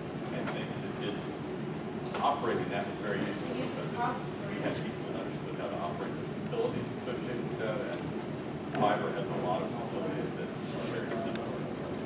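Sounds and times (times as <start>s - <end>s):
low room rumble: 0.0s - 12.0s
faint man speaking: 0.3s - 1.4s, 2.1s - 8.1s, 8.7s - 12.0s.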